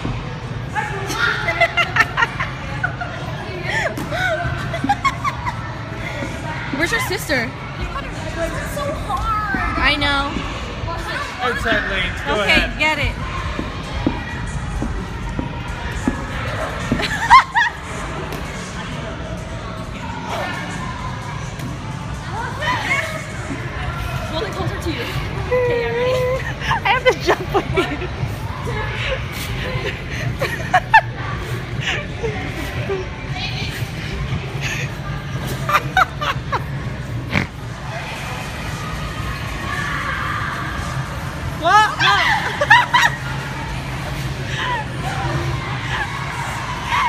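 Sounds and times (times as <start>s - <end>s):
crowd noise: 0.0s - 47.0s.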